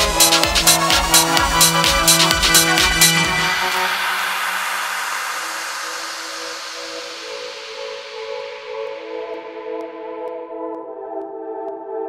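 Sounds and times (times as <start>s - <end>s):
white-noise sweep: 0.0s - 8.8s.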